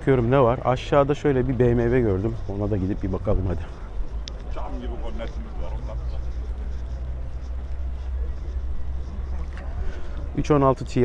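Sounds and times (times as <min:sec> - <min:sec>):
faint even hum: 0:00.0 - 0:11.0
faint voices of people: 0:00.0 - 0:11.0
car engine running: 0:00.1 - 0:11.0.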